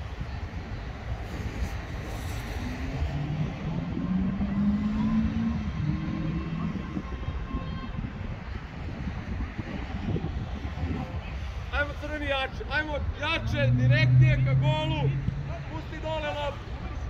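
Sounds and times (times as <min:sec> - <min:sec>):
wind noise on microphone: 0:00.0 - 0:17.0
low mechanical drone: 0:13.2 - 0:16.2.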